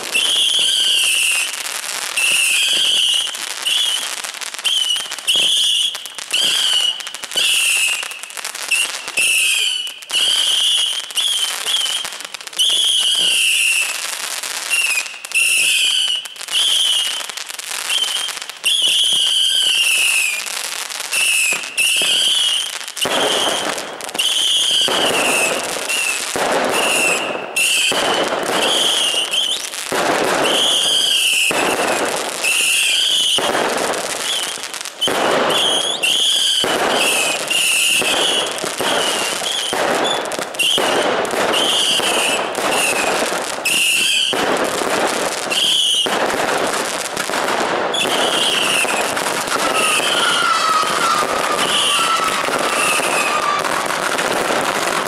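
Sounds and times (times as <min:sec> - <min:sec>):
fireworks bangs: 0:00.0 - 0:55.0.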